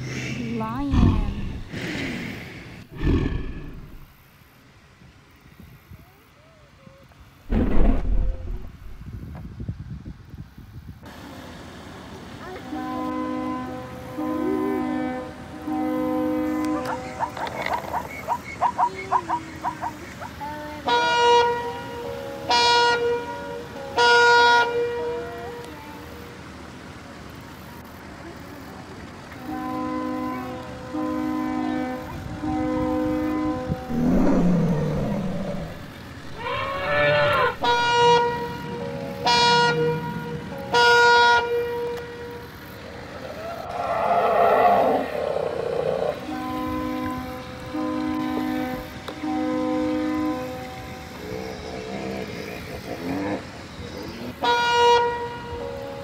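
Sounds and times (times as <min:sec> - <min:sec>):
lower horn: 0:29.4 - 0:53.5, 0:54.2 - 0:56.0
toy horn toots: 0:35.5 - 0:38.6, 0:39.2 - 0:42.6.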